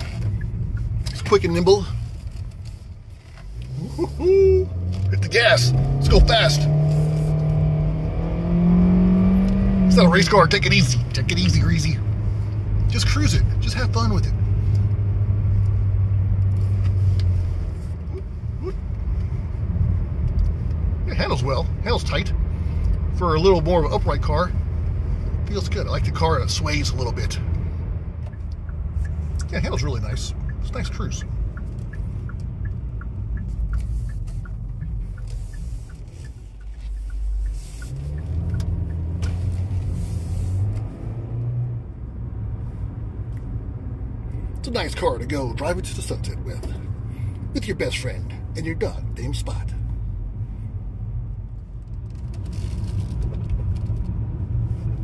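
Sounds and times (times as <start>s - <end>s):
car engine and tyre drone: 0.0s - 55.0s
turn signal ticking: 0.0s - 55.0s.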